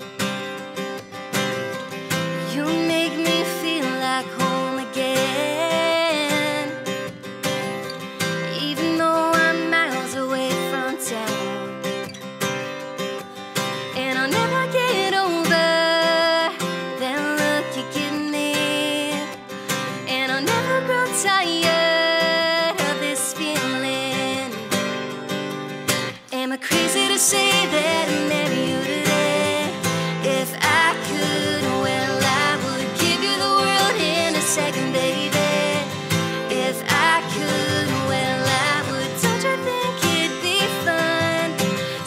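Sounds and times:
strummed acoustic guitar: 0.0s - 42.0s
woman singing: 2.1s - 7.2s, 8.2s - 12.0s, 13.8s - 24.9s, 26.1s - 42.0s.

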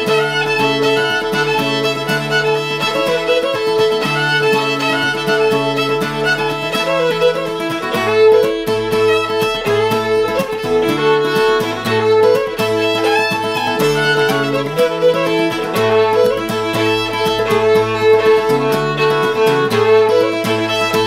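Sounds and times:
acoustic guitar strumming: 0.0s - 21.0s
fiddle playing melody: 0.0s - 21.0s.

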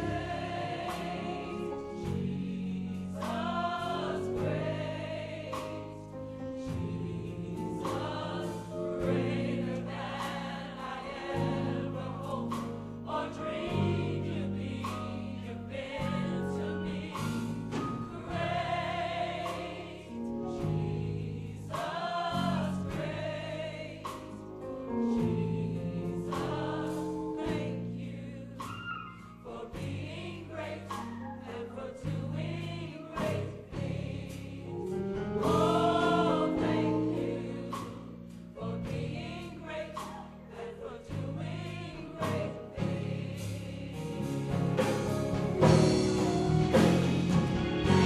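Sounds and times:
gospel choir singing: 0.0s - 48.0s
keyboard: 0.0s - 48.0s
bass guitar: 42.3s - 48.0s.

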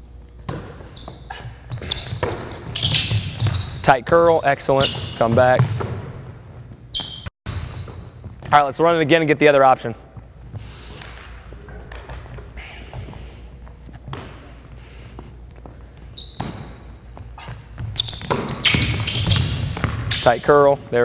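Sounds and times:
sneakers squeaking: 0.0s - 9.2s, 10.0s - 21.0s
basketball bouncing on wooden floor: 0.4s - 8.7s, 16.3s - 20.2s.

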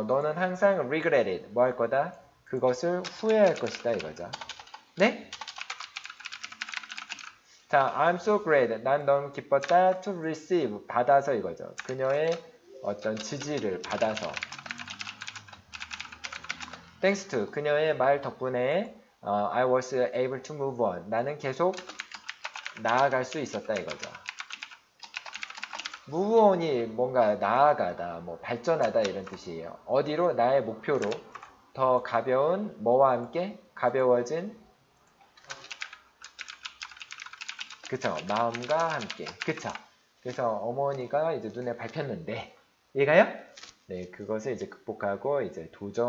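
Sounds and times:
computer keyboard typing: 2.7s - 7.4s, 9.4s - 10.1s, 11.8s - 12.5s, 13.1s - 16.9s, 21.7s - 26.1s, 28.7s - 29.5s, 31.0s - 31.5s, 35.4s - 39.9s.

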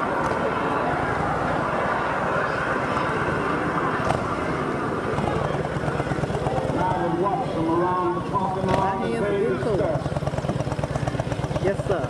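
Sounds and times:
motorcycle engine running: 4.0s - 12.0s.

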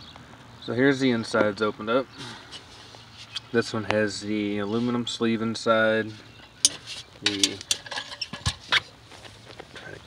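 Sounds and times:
metal canister clicks and knocks: 6.4s - 8.7s
metal canister rattling: 6.4s - 8.8s
metal scrape: 6.4s - 8.9s.

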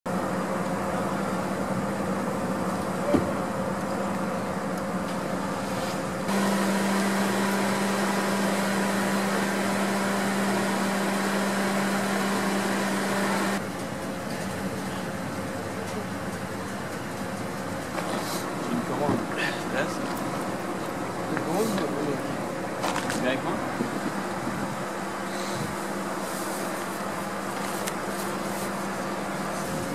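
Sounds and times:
low mechanical hum: 0.1s - 29.9s.

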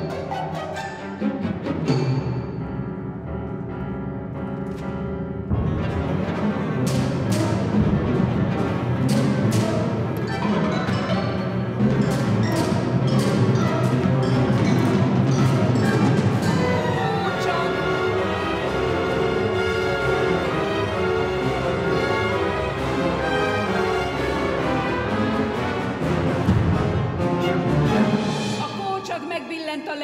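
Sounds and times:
symphony orchestra playing: 0.0s - 30.0s
sharp percussive strikes: 6.8s - 17.8s.

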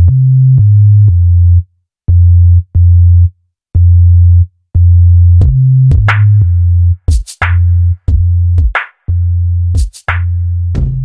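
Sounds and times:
deep sub-bass notes: 0.0s - 11.0s.

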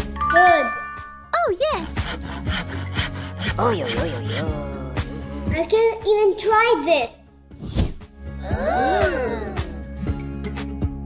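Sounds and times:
light background music: 0.0s - 11.0s
knife sawing on a plate: 1.8s - 4.7s.

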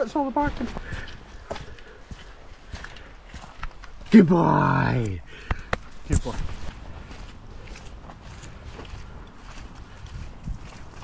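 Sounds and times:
footsteps on earth path: 0.0s - 11.0s.

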